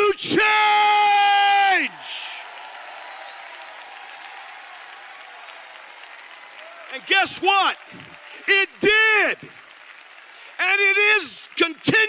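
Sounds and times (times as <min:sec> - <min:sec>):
audience applauding: 0:01.3 - 0:12.0.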